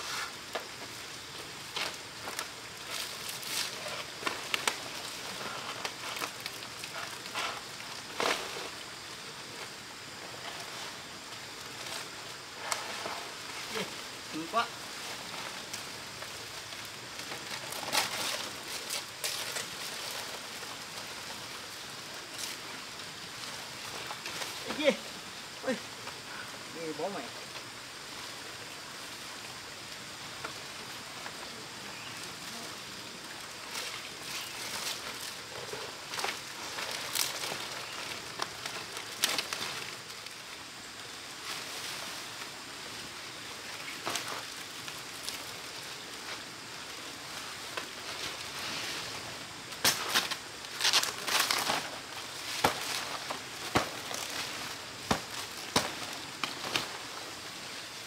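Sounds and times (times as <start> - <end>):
palm fronds rustling: 0.0 - 58.0
steady outdoor hiss: 0.0 - 58.0.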